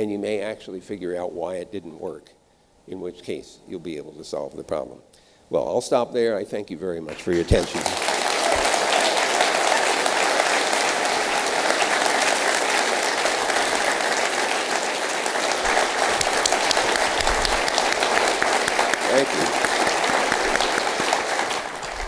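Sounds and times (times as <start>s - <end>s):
audience applauding: 7.1s - 22.0s.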